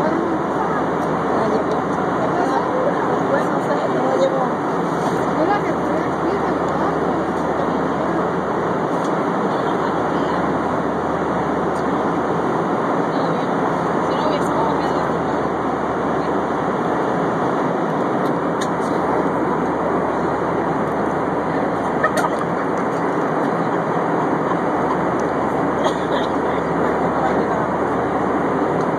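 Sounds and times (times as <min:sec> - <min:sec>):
airliner cabin engine rush: 0:00.0 - 0:28.9.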